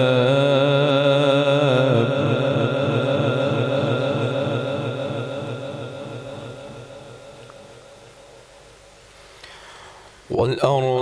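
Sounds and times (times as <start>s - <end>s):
man reciting melodically with echo: 0.0s - 9.0s, 10.1s - 11.0s.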